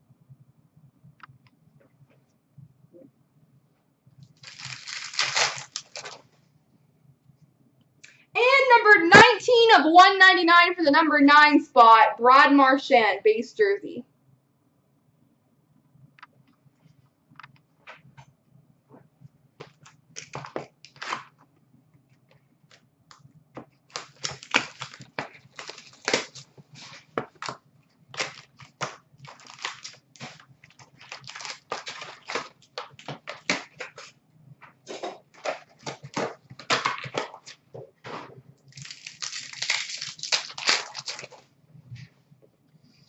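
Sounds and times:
card pack wrappers crackling: 4.2s - 6.2s, 19.6s - 21.3s, 23.9s - 34.1s, 38.7s - 41.4s.

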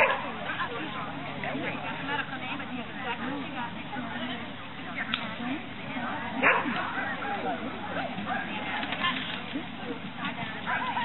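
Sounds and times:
dog barking: 0.0s - 0.2s, 6.4s - 6.8s
people chattering: 0.0s - 11.0s.

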